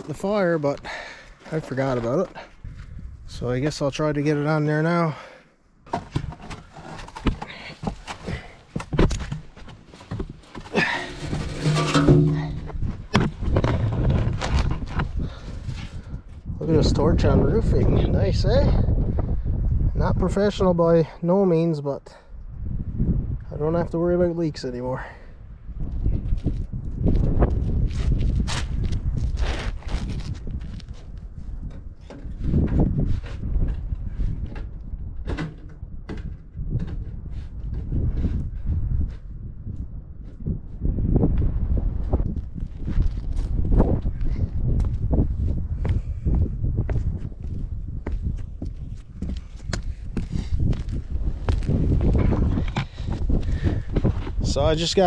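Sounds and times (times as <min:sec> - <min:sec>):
wind buffeting microphone: 0:00.9 - 0:03.8, 0:10.2 - 0:21.0, 0:22.4 - 0:24.2, 0:24.9 - 0:55.0
footsteps on roof: 0:06.0 - 0:15.4, 0:44.1 - 0:54.6.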